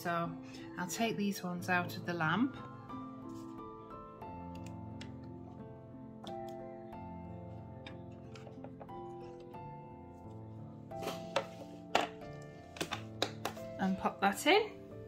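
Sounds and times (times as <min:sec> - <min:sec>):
instrumental background music: 0:00.0 - 0:15.0.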